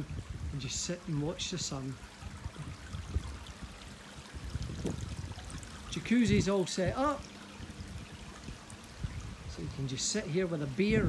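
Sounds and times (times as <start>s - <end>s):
water running and trickling: 0.0s - 11.0s.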